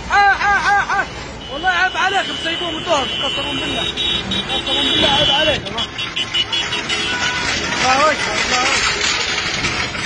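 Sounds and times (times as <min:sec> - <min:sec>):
men calling out: 0:00.0 - 0:05.9
truck engine running: 0:02.0 - 0:10.0.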